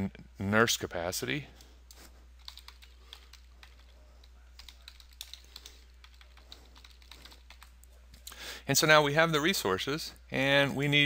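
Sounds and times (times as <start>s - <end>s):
faint keyboard typing: 1.5s - 8.4s.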